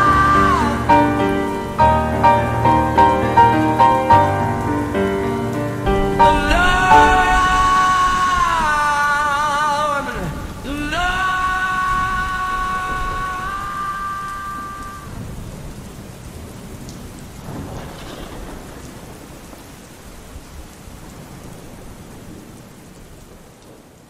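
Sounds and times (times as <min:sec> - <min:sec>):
held musical note: 0:00.0 - 0:08.4
rumbling thunder: 0:00.0 - 0:23.9
steady rain: 0:00.0 - 0:24.0.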